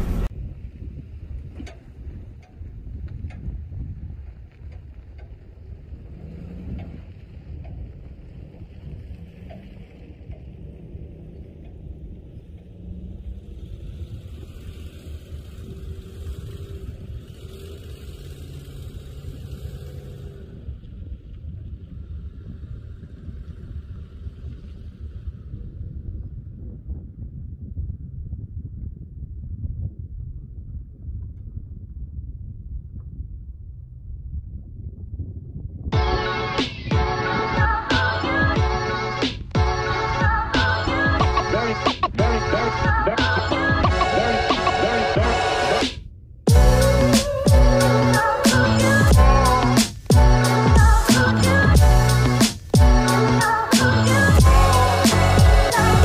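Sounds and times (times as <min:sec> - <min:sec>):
vehicle rumbling on rough trail: 0:00.0 - 0:26.0, 0:46.5 - 0:56.0
wind on microphone: 0:00.0 - 0:56.0.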